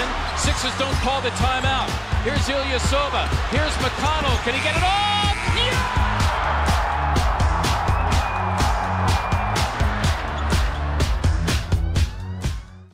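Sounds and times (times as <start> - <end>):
music with drum beat and bass: 0.0 - 12.9.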